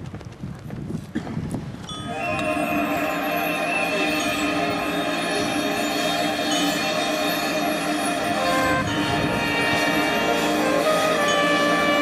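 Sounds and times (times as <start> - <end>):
marching band horns chord: 2.1 - 12.0.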